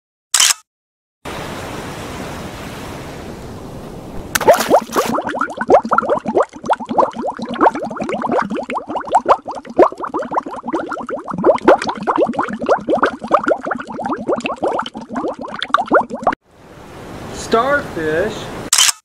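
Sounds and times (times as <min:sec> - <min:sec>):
underwater bubbling: 0:04.2 - 0:16.4.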